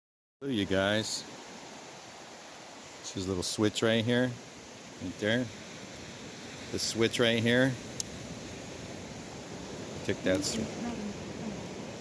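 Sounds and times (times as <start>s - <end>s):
wind hiss on microphone: 0.4s - 12.0s.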